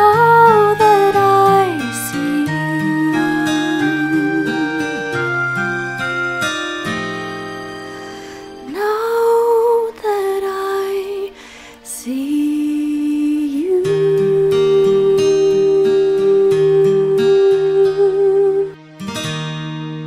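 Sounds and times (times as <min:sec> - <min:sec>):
soft instrumental backing: 0:00.0 - 0:20.0.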